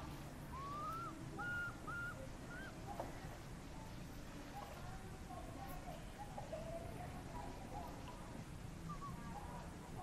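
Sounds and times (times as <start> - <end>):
outdoor background: 0.0 - 10.0
whistle-like animal calls: 0.5 - 2.8, 8.8 - 9.4.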